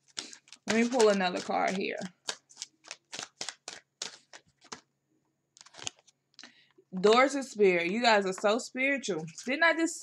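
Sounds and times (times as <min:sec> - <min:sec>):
cards shuffled by hand: 0:00.0 - 0:04.9, 0:05.6 - 0:06.2.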